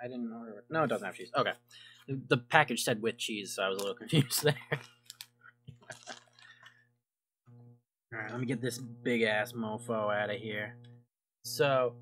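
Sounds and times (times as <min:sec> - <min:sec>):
burger wrapper crinkling: 0:05.8 - 0:06.8
low steady hum: 0:07.5 - 0:12.0.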